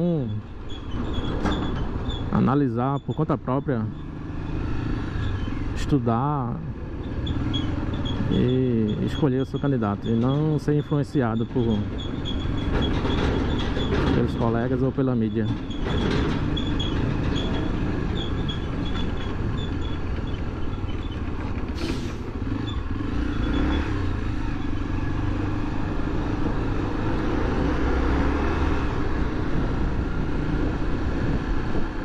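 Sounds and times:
traffic rumble: 0.0 - 32.0
motorcycle engine at low speed: 6.8 - 10.6, 15.5 - 32.0.

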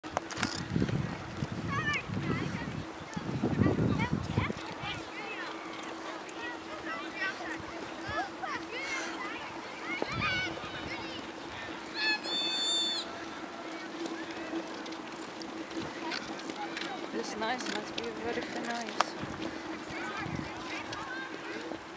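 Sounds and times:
distant murmur of voices: 1.7 - 21.9
ice skates scraping ice: 4.0 - 21.9
high wavering call: 11.8 - 13.2
child squealing: 11.9 - 13.1.

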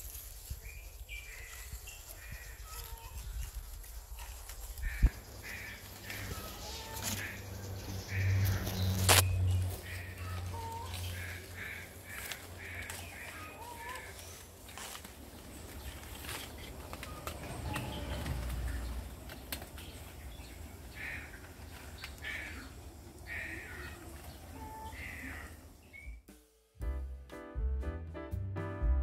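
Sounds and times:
wind rumble on microphone: 0.2 - 5.4
harsh bird calls: 4.5 - 26.2.

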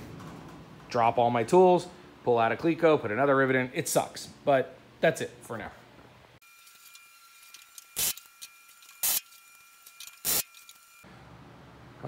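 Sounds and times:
pneumatic rivet gun bursts: 7.6 - 11.0.

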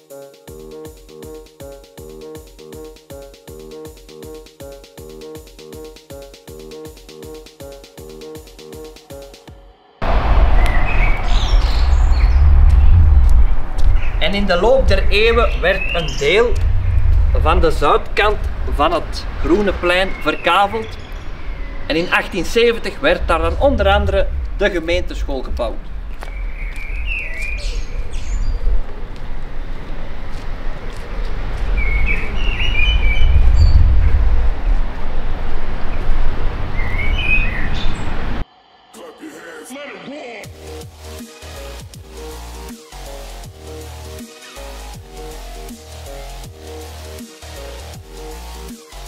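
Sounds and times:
low rumble: 10.0 - 20.0, 21.2 - 26.6, 32.9 - 36.8
birds chirping: 10.6 - 18.6, 19.5 - 29.1, 31.6 - 34.8, 35.9 - 38.3.

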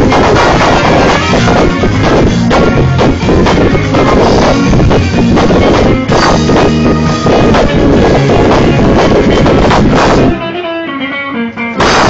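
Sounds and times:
electric guitar notes ringing: 0.0 - 12.0
rock band playing loudly: 0.0 - 12.0.

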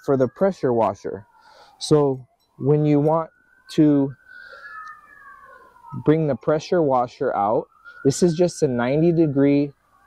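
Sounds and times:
faint siren wailing: 0.0 - 10.0.

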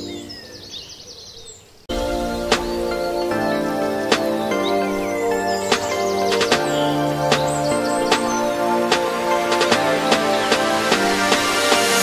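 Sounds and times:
background music: 0.0 - 0.7, 1.9 - 12.0
birds chirping in trills: 0.0 - 12.0.

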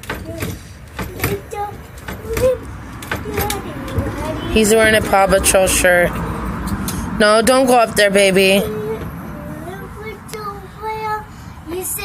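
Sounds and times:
child singing wordlessly: 0.0 - 5.0, 8.6 - 12.0.

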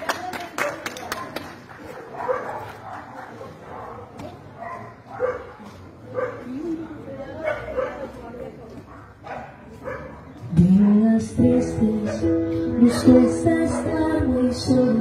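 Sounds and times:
dog barking: 1.9 - 6.5, 7.4 - 8.2, 8.9 - 11.0, 12.0 - 14.0.

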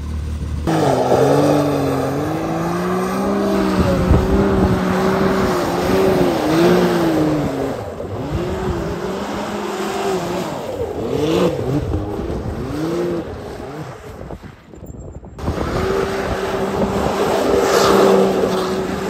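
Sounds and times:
engine revving hard: 0.6 - 14.3, 15.4 - 19.0.

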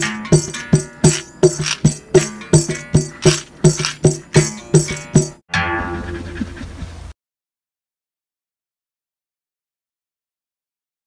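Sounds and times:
intro music with percussive beat: 0.0 - 6.4
held chord ringing: 4.1 - 6.4.

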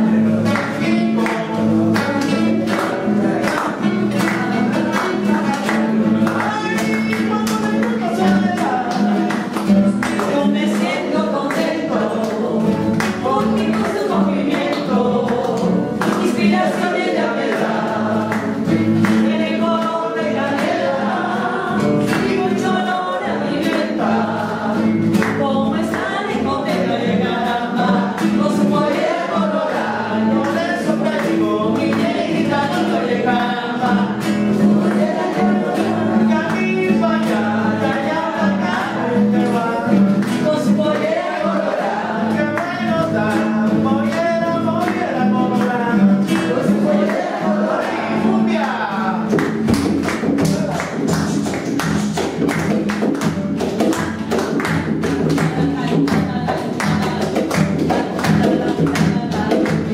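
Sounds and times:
acoustic guitars strumming: 0.0 - 59.9
men singing together: 0.0 - 59.9
hand drumming on guitar body: 46.3 - 59.9.

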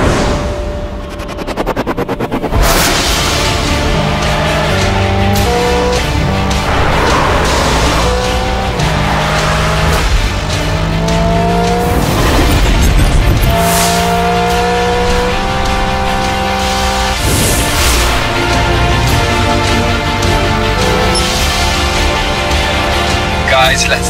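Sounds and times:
music soundtrack: 0.0 - 24.0.

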